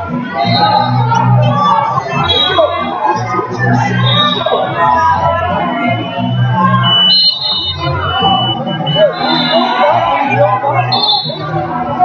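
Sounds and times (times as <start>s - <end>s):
crowd voices in gym: 0.0s - 12.0s
scoreboard buzzer: 6.0s - 9.7s.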